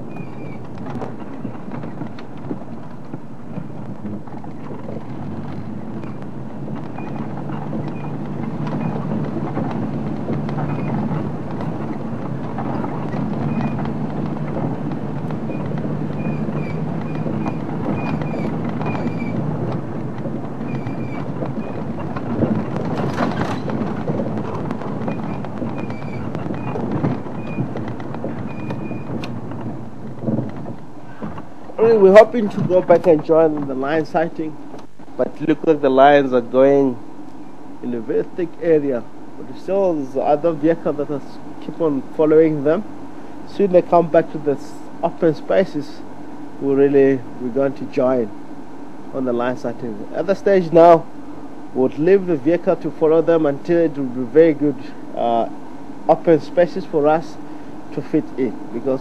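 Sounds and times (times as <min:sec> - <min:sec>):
knocks from bumps: 0:00.0 - 0:35.6
vehicle body rattling: 0:00.0 - 0:37.0, 0:37.8 - 0:42.8, 0:49.2 - 0:51.2, 0:51.8 - 0:59.0
engine and tyre rumble: 0:00.0 - 0:59.0.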